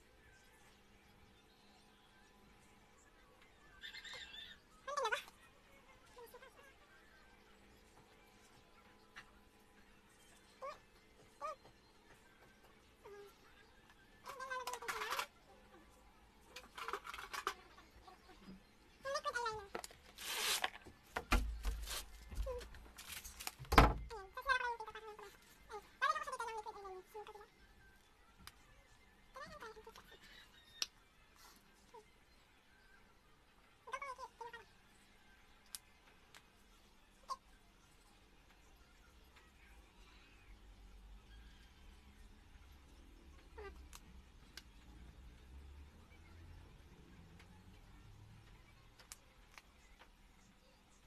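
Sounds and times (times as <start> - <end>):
scratchy rub: 20.1 - 20.8.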